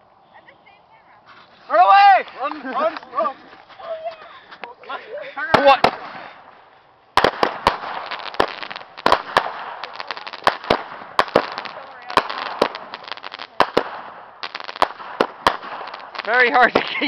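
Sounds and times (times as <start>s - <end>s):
firework pops and bangs: 5.5s - 6.6s, 7.2s - 17.0s
firework crackling hiss: 5.5s - 17.0s.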